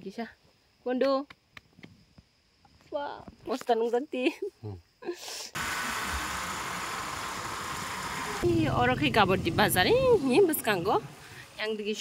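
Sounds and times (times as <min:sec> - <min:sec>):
wind and road noise: 0:05.6 - 0:12.0
motorbike engine running: 0:08.1 - 0:11.6.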